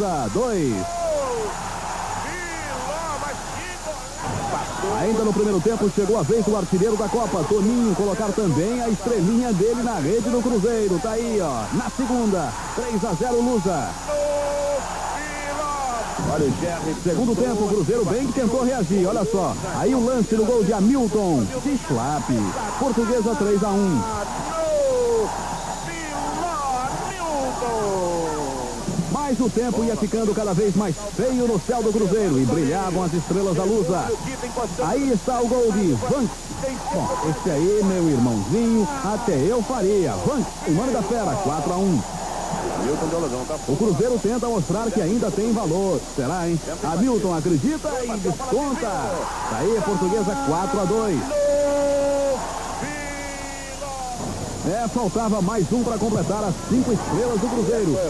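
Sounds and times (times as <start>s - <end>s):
voices shouting long calls: 0.0s - 28.9s, 31.7s - 46.2s, 48.3s - 58.0s
crowd roar: 0.0s - 47.2s, 48.5s - 58.0s
faint high whine: 0.0s - 58.0s.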